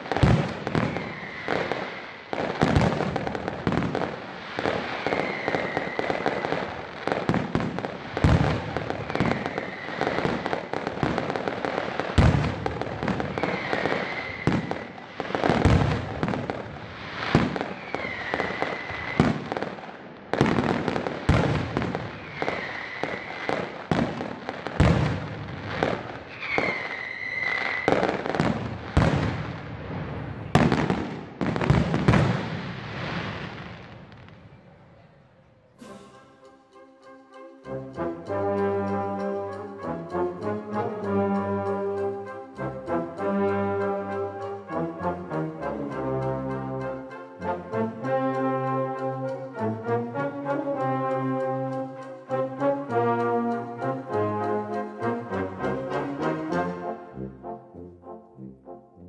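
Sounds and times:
hiss of crackle: 0.0 - 20.2
fireworks bursting bangs: 0.0 - 34.9
short high whistle: 13.4 - 14.8, 17.8 - 19.3, 26.3 - 28.0, 35.8 - 37.2.

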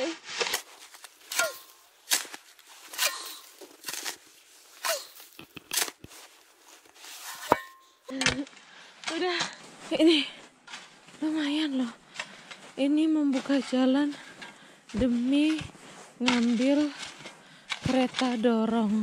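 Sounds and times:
shovel crunching into snow: 0.0 - 7.9, 9.1 - 19.0.

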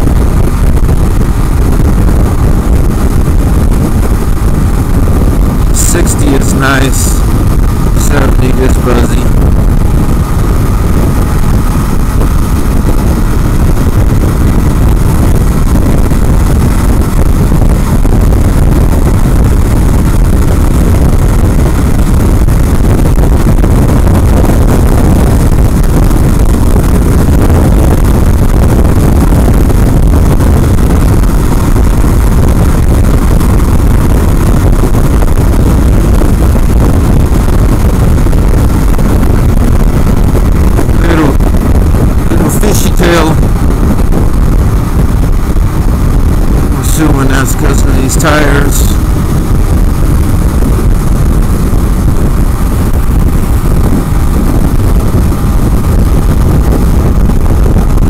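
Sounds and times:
motorcycle engine running: 0.0 - 58.0
wind buffeting microphone: 0.0 - 58.0.

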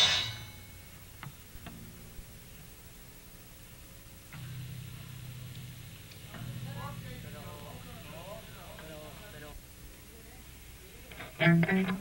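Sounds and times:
heavy metal band chord: 0.0 - 0.8, 4.4 - 9.4.

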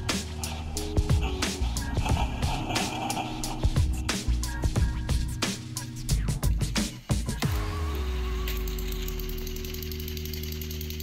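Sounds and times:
toy train motors humming: 8.5 - 11.0.

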